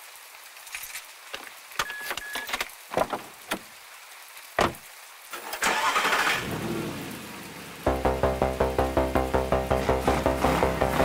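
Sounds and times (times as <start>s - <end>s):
car engine cranking and starting: 5.4s - 6.9s
synthesizer bassline: 7.8s - 11.0s.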